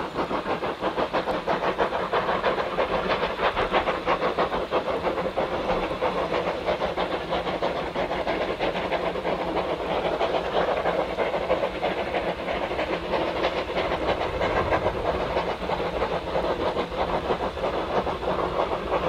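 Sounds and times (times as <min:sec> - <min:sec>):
steam hissing: 0:00.0 - 0:19.0
steam locomotive exhaust beats: 0:00.0 - 0:19.0.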